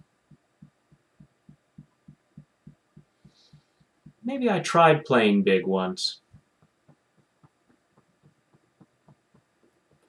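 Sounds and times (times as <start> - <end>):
fingertips tapping on collarbone: 0.3 - 4.2, 6.2 - 10.0.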